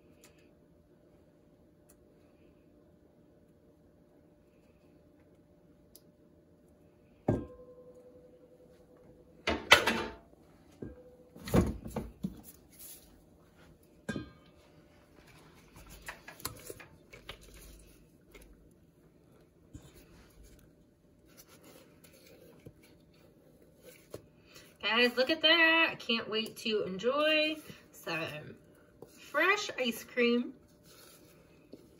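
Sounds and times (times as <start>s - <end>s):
kitchenware knocking and clattering: 9.5s - 10.3s.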